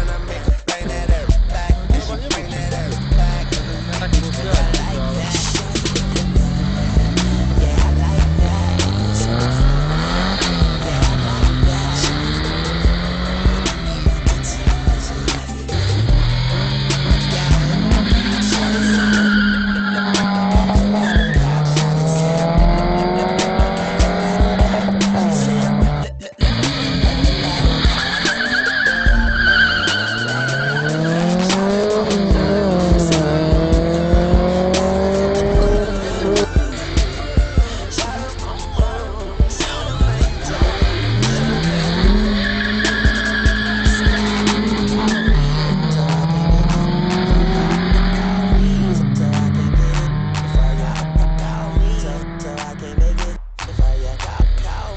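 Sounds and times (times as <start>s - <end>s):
car engines revving: 0.0s - 54.9s
music with steady beat: 0.0s - 54.9s
tyre squeal: 15.2s - 21.7s, 26.6s - 33.4s, 40.8s - 49.0s.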